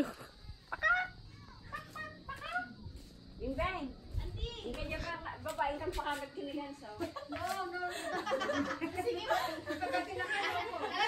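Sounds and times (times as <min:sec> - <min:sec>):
person laughing: 0:00.0 - 0:00.4
people talking: 0:00.0 - 0:11.0.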